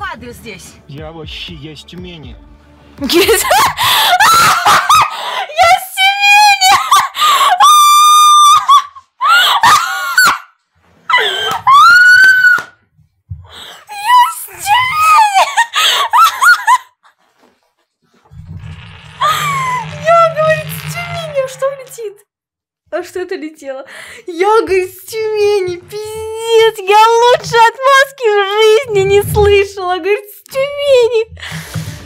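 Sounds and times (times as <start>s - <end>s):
woman laughing hysterically: 3.2s - 5.6s, 6.6s - 10.4s, 11.1s - 12.4s, 14.0s - 17.1s.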